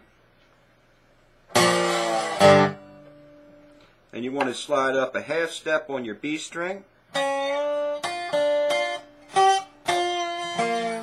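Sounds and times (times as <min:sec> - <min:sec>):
slide acoustic guitar riff: 0:01.5 - 0:03.8, 0:07.1 - 0:11.0.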